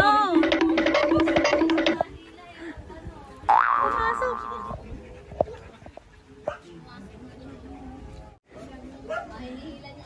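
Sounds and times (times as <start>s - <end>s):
cartoon boing sound effect: 3.5s - 4.7s.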